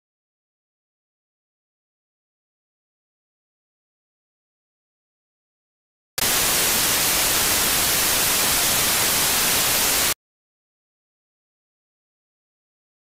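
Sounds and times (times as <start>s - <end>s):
loud static hiss: 6.2s - 10.2s.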